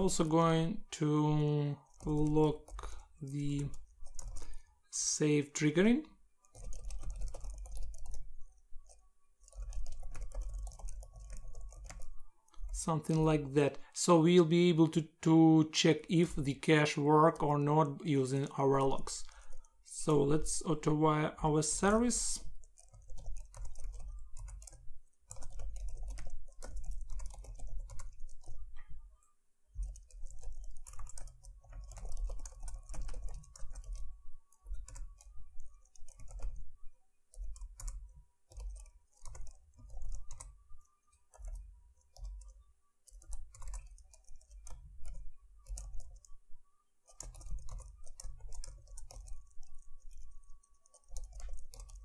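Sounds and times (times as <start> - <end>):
typing on a computer keyboard: 1.8 - 4.7, 6.4 - 13.4, 21.5 - 28.8, 29.7 - 36.7, 37.3 - 46.4, 47.0 - 52.0.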